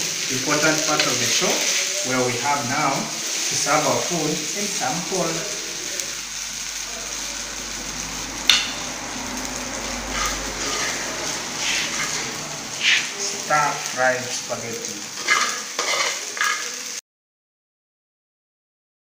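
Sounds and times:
spaghetti sizzling in a pan: 0.0 - 17.0
metal tongs scraping and clinking: 10.1 - 13.0, 15.2 - 16.7.

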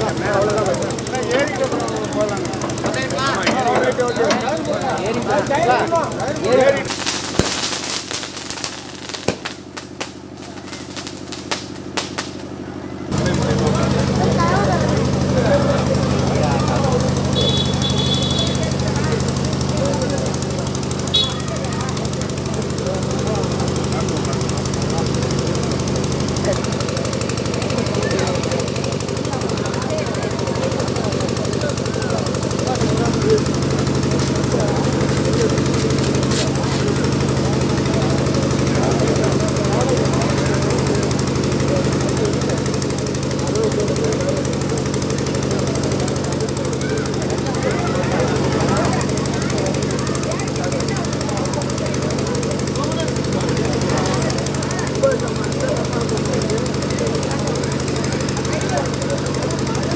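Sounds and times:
engine running with knocking beat: 0.0 - 59.9
people's voices: 0.0 - 59.9.

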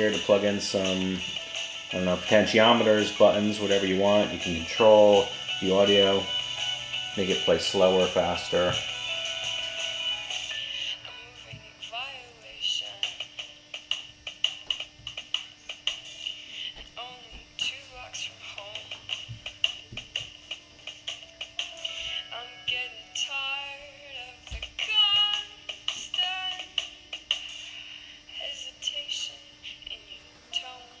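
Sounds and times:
steady low hum: 0.0 - 31.0
thin music with singing: 0.0 - 31.0.

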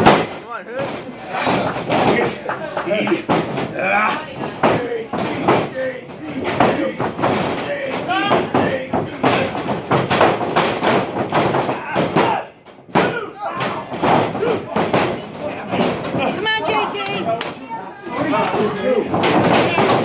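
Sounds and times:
heavy slam: 0.0 - 16.5, 18.1 - 20.0
crowd voices and shouting: 0.0 - 20.0.

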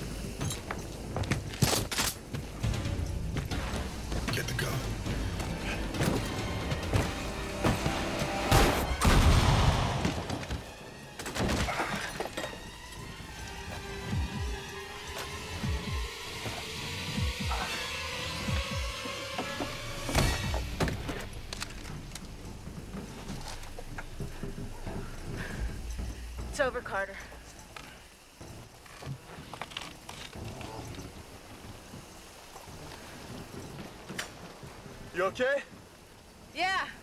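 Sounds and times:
action film music score: 0.0 - 37.0.

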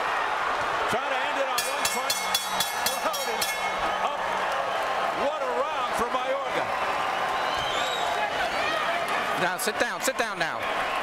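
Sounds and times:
arena crowd shouting: 0.0 - 11.0
ringing bell strikes: 1.6 - 3.9.

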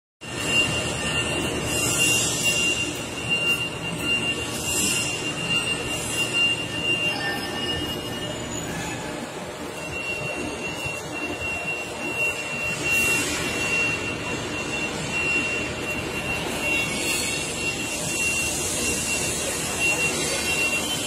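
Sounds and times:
mechanical background noise: 0.2 - 21.0
thin high whine: 0.2 - 21.0.

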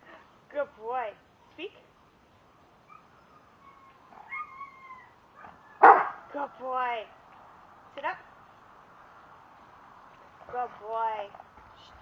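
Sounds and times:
dog whining: 2.8 - 6.1
dog barking: 5.4 - 6.2.

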